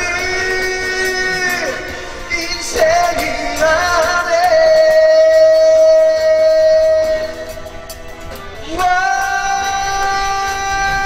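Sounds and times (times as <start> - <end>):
backing music: 0.0 - 11.0
person singing a long note: 8.6 - 11.0.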